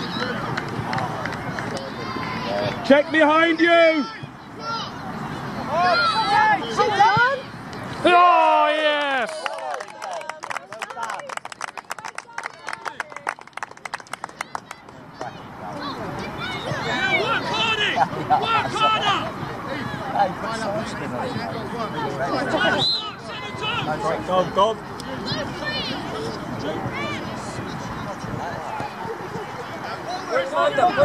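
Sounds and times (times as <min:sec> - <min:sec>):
outdoor match noise: 0:00.0 - 0:31.0
voices: 0:00.0 - 0:31.0
distant voices shouting: 0:15.2 - 0:20.2.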